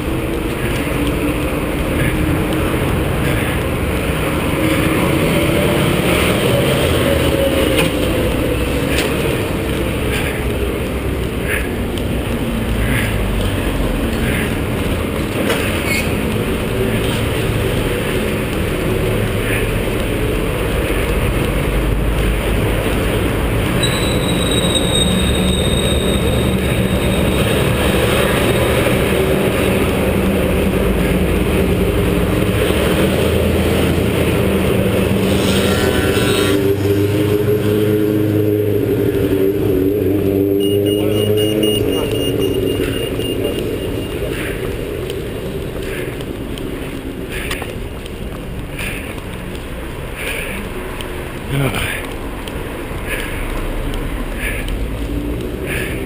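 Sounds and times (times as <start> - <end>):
vehicle engine passing: 0.0 - 23.8, 25.0 - 46.0
wind rumble: 0.0 - 35.6, 36.4 - 56.0
city street traffic: 0.0 - 56.0.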